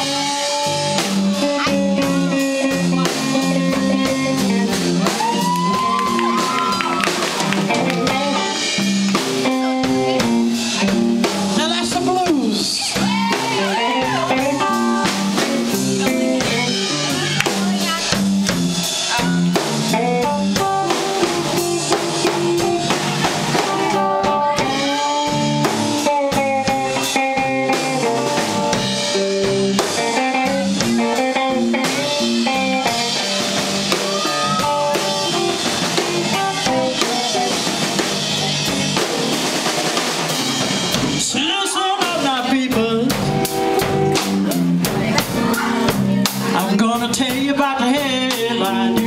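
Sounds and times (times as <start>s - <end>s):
bass guitar: 0.0s - 49.0s
drum kit steady beat: 0.0s - 49.0s
electric guitar with bent notes: 0.0s - 49.0s.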